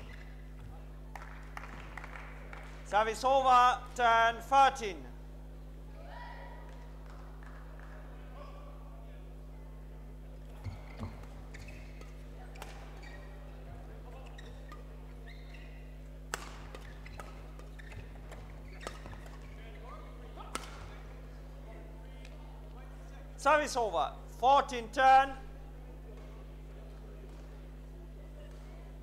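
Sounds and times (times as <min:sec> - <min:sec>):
steady low hum: 0:00.0 - 0:29.0
rackets hitting shuttlecock: 0:10.5 - 0:21.3.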